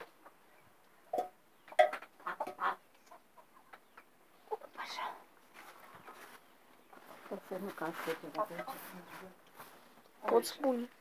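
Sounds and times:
hens clucking: 1.0 - 10.6.

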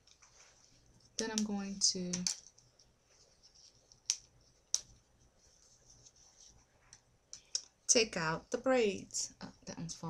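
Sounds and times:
rustle of hair: 0.0 - 1.2, 3.0 - 6.9.

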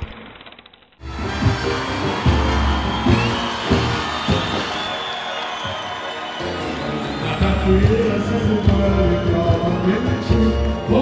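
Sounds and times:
audience cheering: 1.0 - 11.0.

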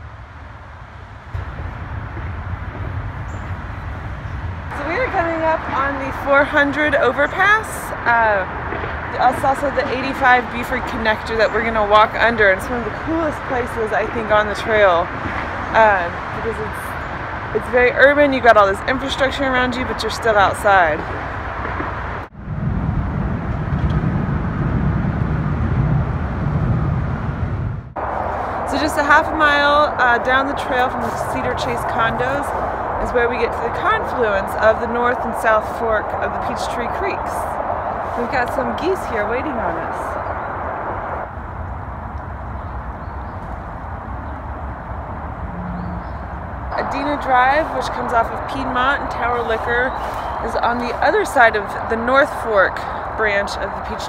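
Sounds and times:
highway traffic rumble: 0.0 - 54.0.

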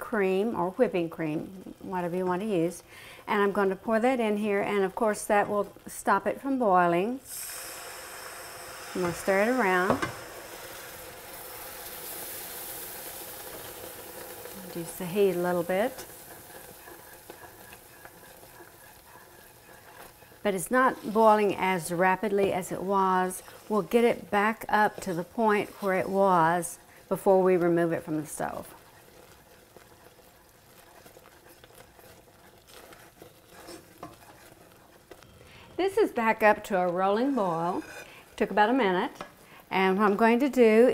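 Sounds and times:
syrup sizzling in saucepan: 0.0 - 40.9
wooden spoon stirring: 9.0 - 40.3.

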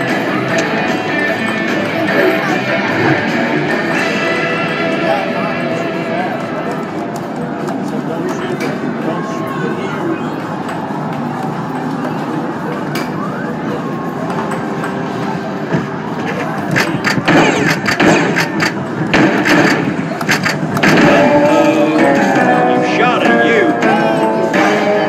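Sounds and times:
crowd chatter: 0.0 - 25.0
game machine noise: 0.0 - 25.0
sharp clacks and knocks: 16.7 - 21.1.

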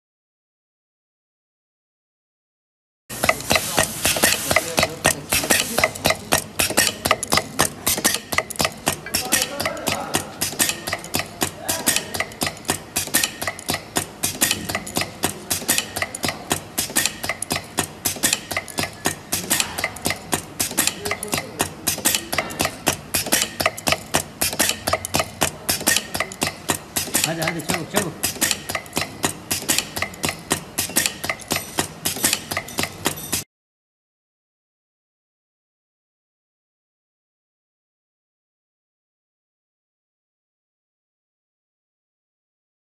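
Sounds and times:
pneumatic machine clacking: 3.1 - 33.5.

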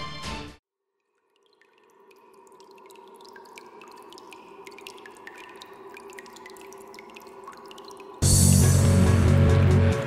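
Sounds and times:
water dripping: 0.7 - 10.0.

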